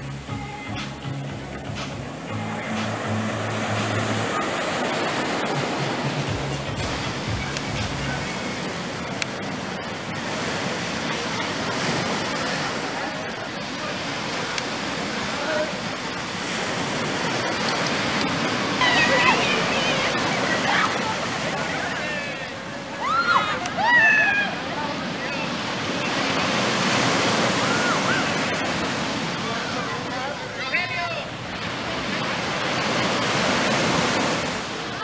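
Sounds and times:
people's voices in background: 0.0 - 35.0
small waves washing up a beach: 0.0 - 35.0.

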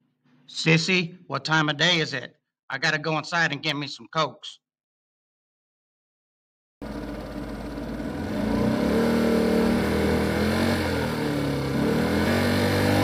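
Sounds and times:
vehicle engine running: 6.8 - 13.0.

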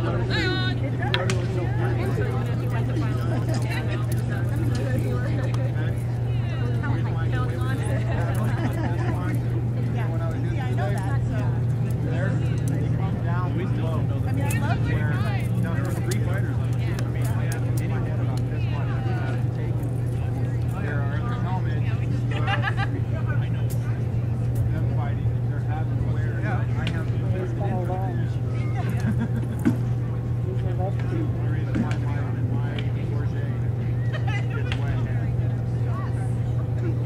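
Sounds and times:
spectators chattering: 0.0 - 37.0
steady low hum: 0.0 - 37.0.

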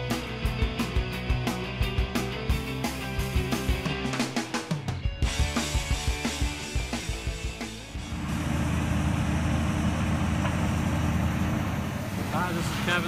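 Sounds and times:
music with drum beat: 0.0 - 8.1
large vehicle engine rumbling: 7.7 - 13.0
man talking: 12.3 - 13.0.

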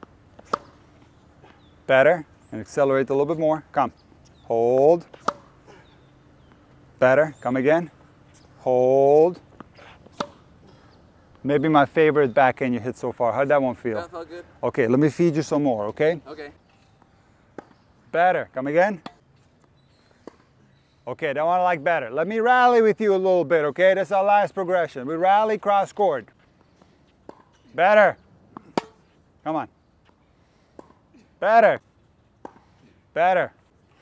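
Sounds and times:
racket striking tennis ball: 0.4 - 0.9, 5.0 - 5.6, 9.4 - 10.6, 19.0 - 19.2, 27.3 - 27.6, 28.6 - 29.2, 30.8 - 31.0.

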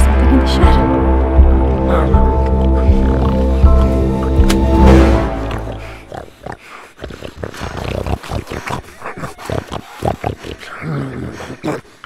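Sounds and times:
monster growls and snarls: 5.0 - 12.0.

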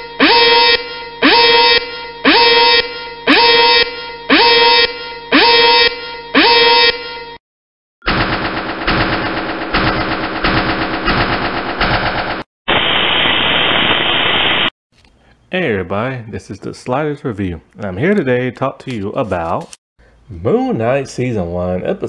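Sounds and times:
warning alarm blasts: 0.0 - 7.4.

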